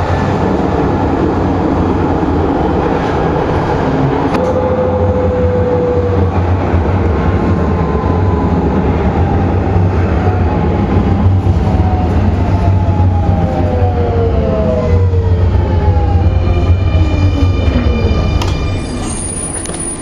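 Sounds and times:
train rolling rumble: 0:00.0 - 0:20.0.

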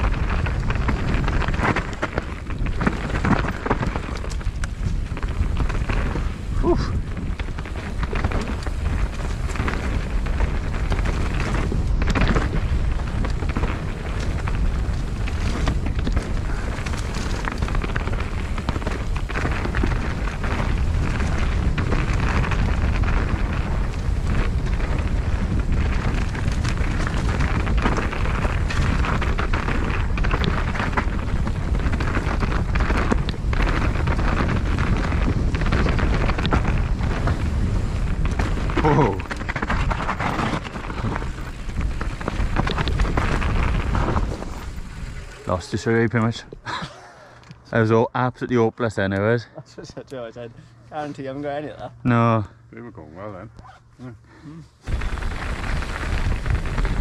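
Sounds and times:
wind rushing on microphone: 0:00.0 - 0:46.6, 0:54.8 - 0:57.0
bike rattling and knocking: 0:00.0 - 0:46.9, 0:54.8 - 0:57.0
tyres rolling over rough ground: 0:00.0 - 0:57.0.

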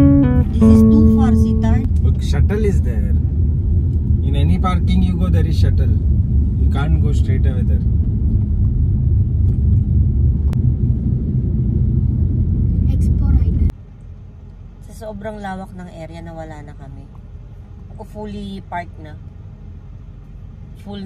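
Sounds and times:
held music chord: 0:00.0 - 0:01.9
car road and engine rumble: 0:00.0 - 0:21.0.

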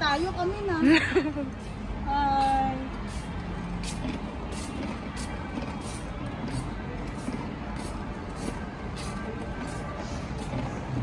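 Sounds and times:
wagon wheels rumbling on concrete: 0:01.6 - 0:11.0.

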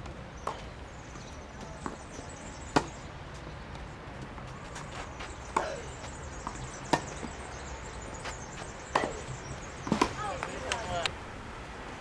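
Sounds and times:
tennis racket hitting ball: 0:08.9 - 0:10.8.

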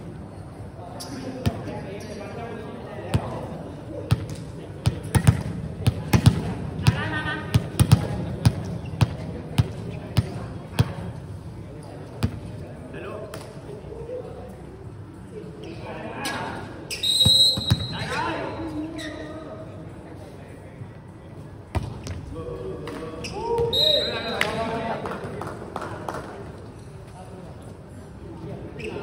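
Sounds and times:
volleyball bouncing on court floor: 0:04.1 - 0:11.1, 0:17.3 - 0:18.0.

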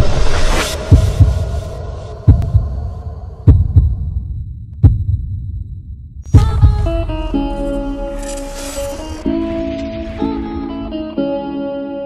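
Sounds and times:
lingering music tone: 0:00.0 - 0:12.0
heartbeat thumps: 0:00.8 - 0:07.4.

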